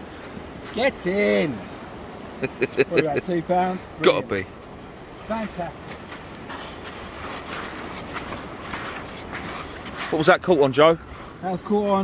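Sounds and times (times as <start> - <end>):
sea rushing: 0.0 - 12.0
wind: 0.0 - 12.0.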